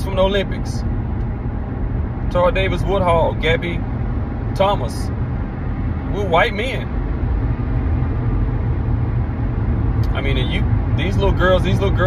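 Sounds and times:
car rumbling inside cabin: 0.0s - 12.0s.

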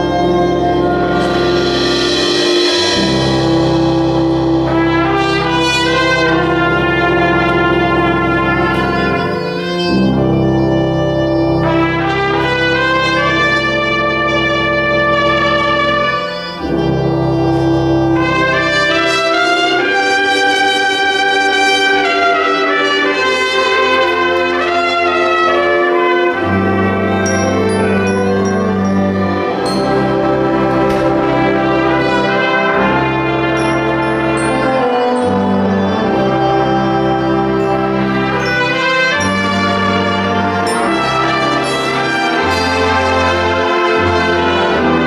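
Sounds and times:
concert band chords: 0.0s - 45.0s
solo trumpet melody: 0.0s - 45.0s.

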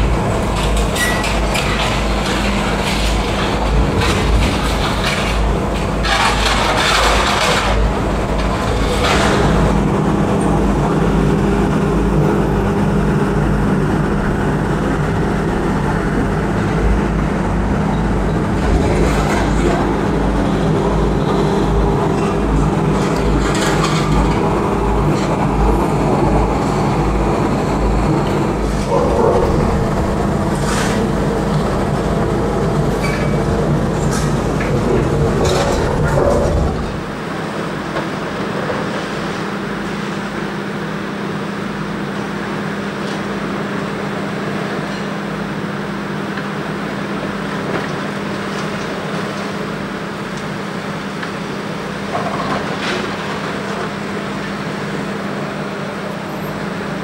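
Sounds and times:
heavy machinery droning: 0.0s - 40.9s
wind rumbling on microphone: 25.6s - 37.3s.

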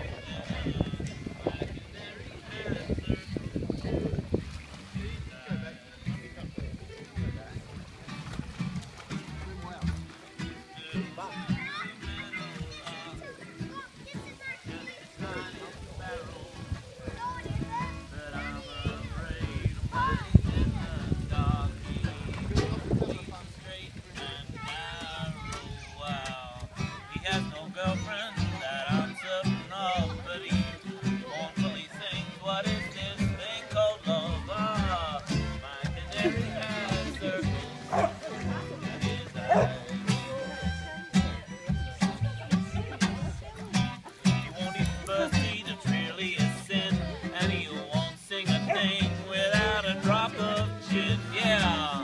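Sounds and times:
plucked double bass: 0.0s - 23.3s, 24.2s - 52.0s
acoustic guitar: 0.0s - 52.0s
fiddle: 0.0s - 52.0s.

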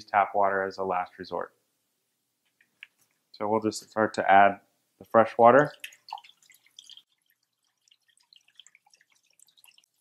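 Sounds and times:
water pouring into a tank: 5.6s - 10.0s
water splashing and dripping: 5.6s - 10.0s.

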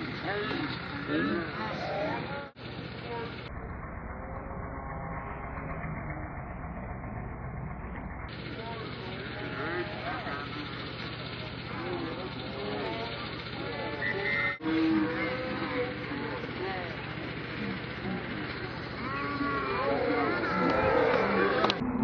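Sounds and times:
voices calling out and talking: 0.0s - 6.8s, 8.3s - 22.0s
steady low hum: 0.0s - 22.0s.

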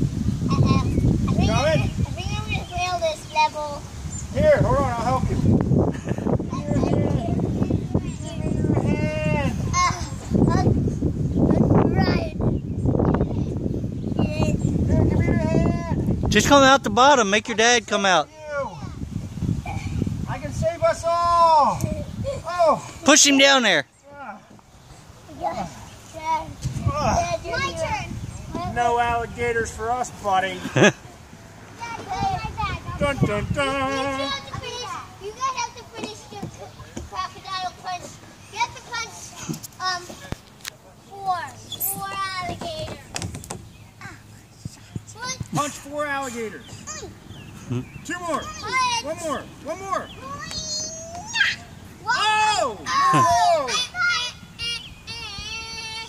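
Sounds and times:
wind rumble on microphone: 0.0s - 3.1s, 3.8s - 17.0s, 18.6s - 22.9s, 26.5s - 30.2s, 32.1s - 34.7s
child squealing: 50.2s - 56.0s.

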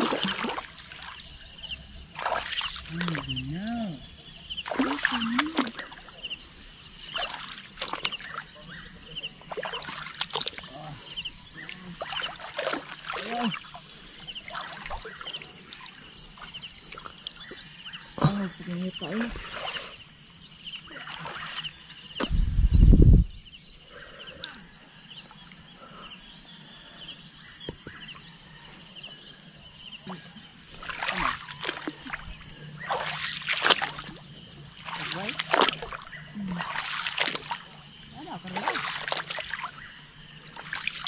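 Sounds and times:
insect drone: 0.0s - 41.0s
voices: 2.8s - 6.5s, 7.1s - 16.0s, 18.2s - 19.8s, 30.0s - 39.8s.

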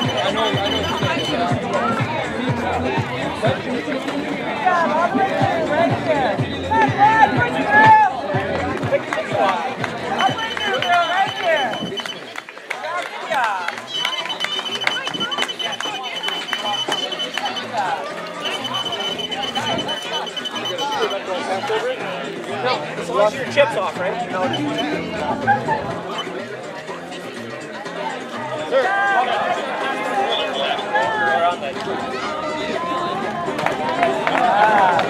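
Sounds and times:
high electronic beeping: 0.0s - 1.6s, 10.2s - 12.3s, 13.8s - 21.6s, 24.4s - 25.1s
chatter of voices: 0.0s - 35.0s.

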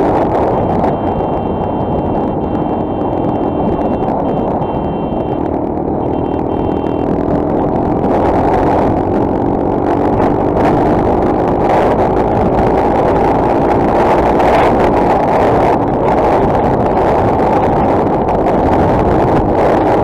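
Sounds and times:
motorcycle engine accelerating: 0.0s - 20.0s
wind noise on microphone: 0.0s - 20.0s.

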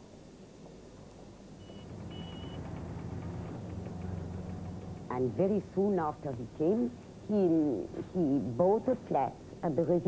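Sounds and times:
backhoe engine rumbling: 1.6s - 10.0s.

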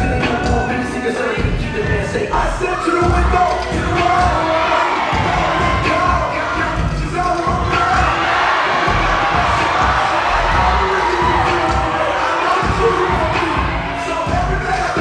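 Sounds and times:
audience cheering and shouting: 0.0s - 15.0s
hip hop music with heavy bass: 0.0s - 15.0s.

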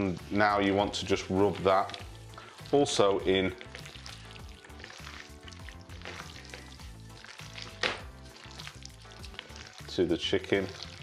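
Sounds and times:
hands kneading raw chicken squelching: 0.0s - 11.0s
quiet background music: 0.0s - 11.0s.

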